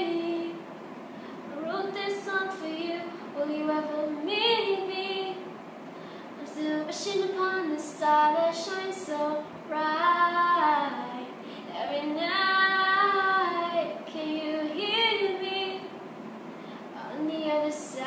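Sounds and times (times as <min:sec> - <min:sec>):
woman singing unaccompanied: 0:00.0 - 0:00.7, 0:01.5 - 0:05.4, 0:06.4 - 0:16.0, 0:17.0 - 0:18.0.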